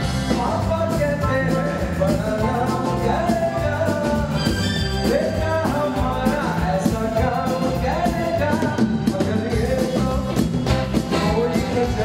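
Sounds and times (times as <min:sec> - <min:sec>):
drums: 0:00.0 - 0:12.0
live band music: 0:00.0 - 0:12.0
man singing into microphone: 0:00.0 - 0:12.0.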